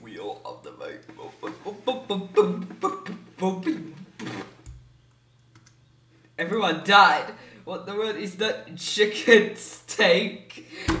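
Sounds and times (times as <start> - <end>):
man talking: 0.0 - 4.0
faint clicks: 4.6 - 6.4.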